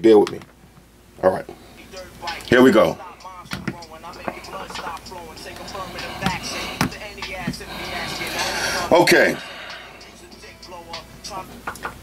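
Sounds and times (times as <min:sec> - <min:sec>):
song with vocals over drum beat: 0:01.8 - 0:12.0.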